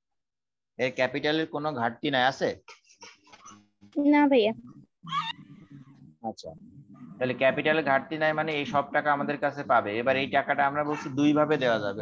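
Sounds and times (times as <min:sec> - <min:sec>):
high-pitched cry: 0:05.0 - 0:05.5.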